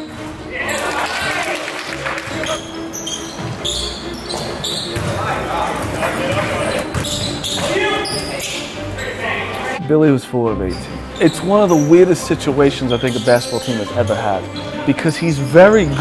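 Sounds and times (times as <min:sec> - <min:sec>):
sneakers squeaking: 0:00.0 - 0:09.8, 0:10.7 - 0:16.0
basketball bouncing on hardwood: 0:04.3 - 0:05.2.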